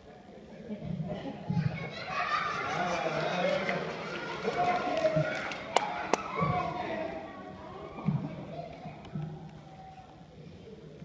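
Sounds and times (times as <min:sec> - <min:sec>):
children talking in a hall: 0:00.0 - 0:11.0.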